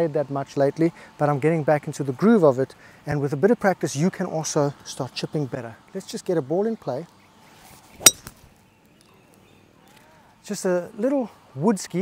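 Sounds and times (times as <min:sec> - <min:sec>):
faint outdoor background: 0:00.0 - 0:12.0
golf club striking ball: 0:08.0 - 0:08.4.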